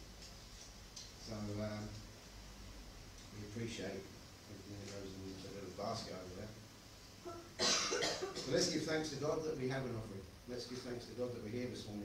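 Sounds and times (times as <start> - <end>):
man speaking: 1.2 - 2.0, 3.3 - 6.6, 8.3 - 12.0
sharp cough: 7.6 - 8.7.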